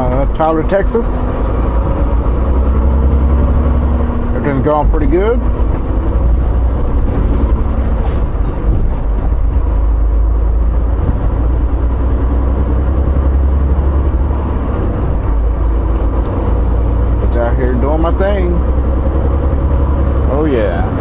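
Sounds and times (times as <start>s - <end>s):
truck engine and road drone: 0.0s - 21.0s.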